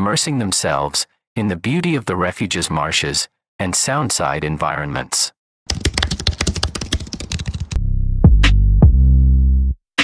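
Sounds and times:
rapid clicks: 0:05.7 - 0:07.8.

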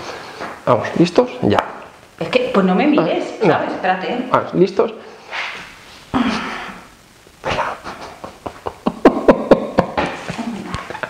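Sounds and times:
stifled laughter: 0:07.4 - 0:11.0.

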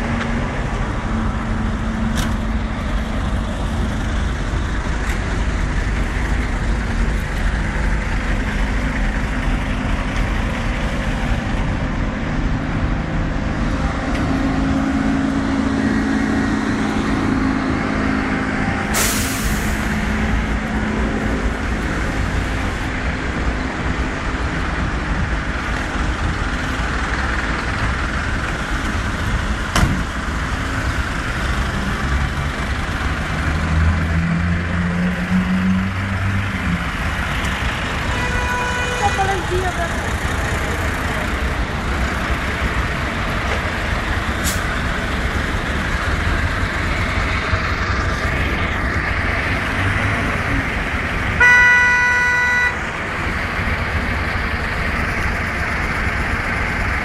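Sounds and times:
idling vehicle engines rumbling: 0:00.0 - 0:57.0
compressed air hiss: 0:18.9 - 0:19.9.

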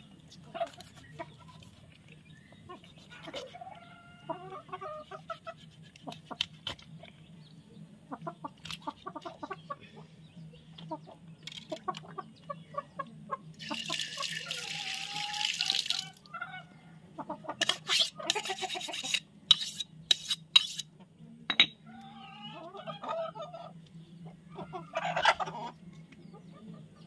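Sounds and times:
chickens clucking: 0:00.0 - 0:19.3, 0:21.8 - 0:27.0.

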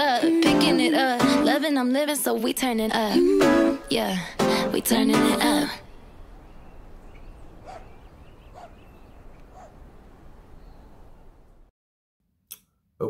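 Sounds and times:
faint animal calls: 0:07.1 - 0:09.8.

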